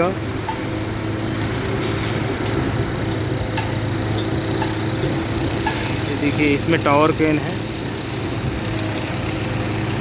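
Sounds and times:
heavy machinery engines droning: 0.0 - 10.0.

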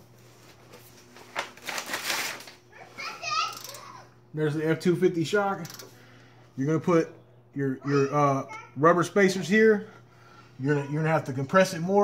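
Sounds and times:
handling noise rustling and scraping: 0.0 - 3.8.

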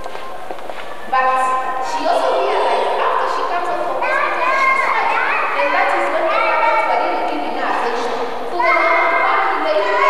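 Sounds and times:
woman talking into microphone: 1.1 - 4.2.

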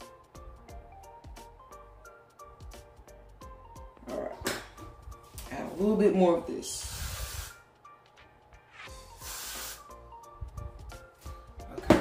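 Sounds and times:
quiet background music: 0.0 - 12.0
aerosol spray hiss: 6.7 - 7.6, 8.9 - 10.0.

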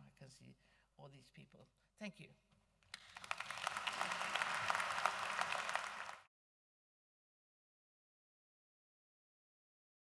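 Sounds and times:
audience applauding: 2.9 - 6.3.

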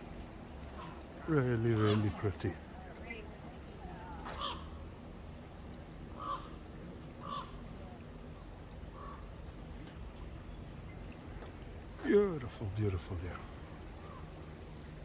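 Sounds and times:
low background hum: 0.0 - 15.0
bird calling: 0.6 - 3.4, 4.0 - 4.9, 6.1 - 8.0, 8.9 - 11.5, 13.7 - 14.8.

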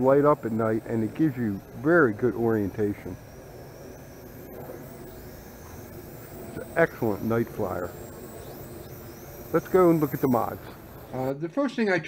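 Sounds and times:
toy drone motors whining: 0.0 - 11.4
low outdoor hum: 0.0 - 11.6.

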